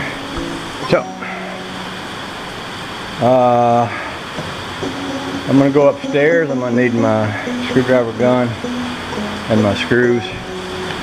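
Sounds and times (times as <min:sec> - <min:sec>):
rain runoff rushing: 0:00.0 - 0:11.0.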